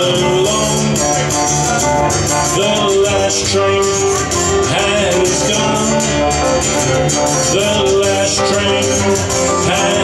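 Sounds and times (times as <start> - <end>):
keyboard playing: 0.0 - 10.0
strummed acoustic guitar: 0.0 - 10.0.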